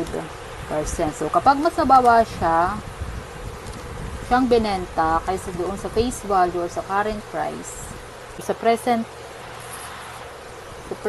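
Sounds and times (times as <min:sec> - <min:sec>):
person speaking: 0:00.0 - 0:02.8.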